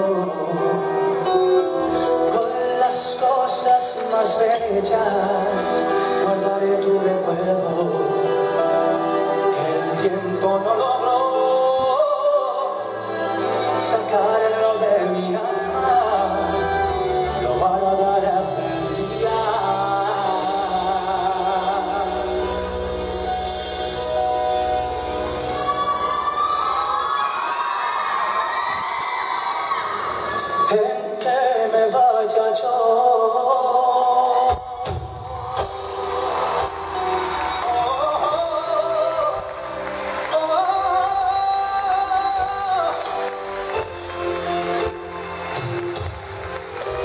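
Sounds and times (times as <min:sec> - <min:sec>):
audience cheering: 0:25.3 - 0:30.9, 0:34.8 - 0:47.0.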